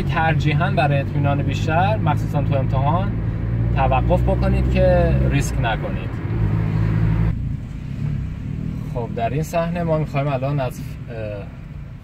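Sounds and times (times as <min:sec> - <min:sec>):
car engine hum inside cabin: 0:00.0 - 0:12.0
road and wind hiss: 0:00.0 - 0:12.0.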